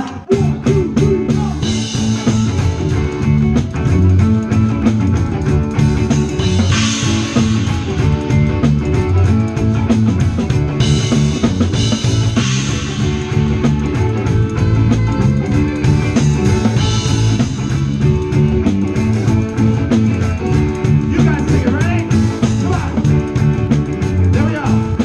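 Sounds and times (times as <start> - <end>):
rock band playing: 0.0 - 25.0.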